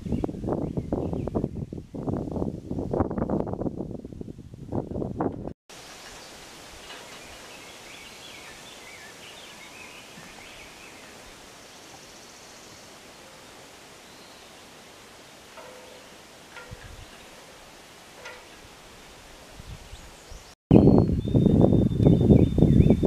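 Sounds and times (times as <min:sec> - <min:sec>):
breeze and rustling leaves: 0:00.0 - 0:23.0
small bird singing: 0:07.0 - 0:14.7, 0:19.6 - 0:23.0.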